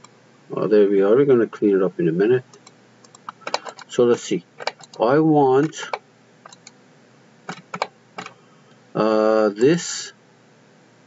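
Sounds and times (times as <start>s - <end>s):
computer mouse clicks: 2.5s - 3.9s, 4.6s - 5.0s, 5.6s - 6.8s, 7.5s - 8.4s.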